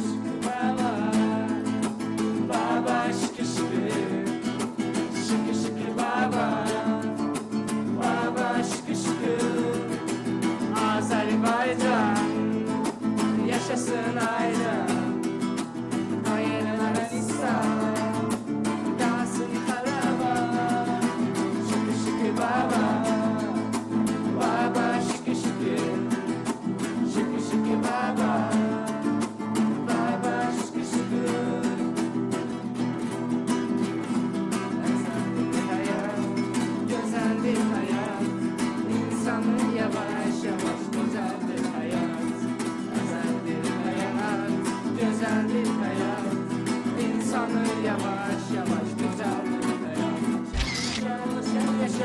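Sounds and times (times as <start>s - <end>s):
person singing: 0.0s - 26.1s, 34.8s - 52.0s
acoustic guitars strumming: 0.0s - 52.0s.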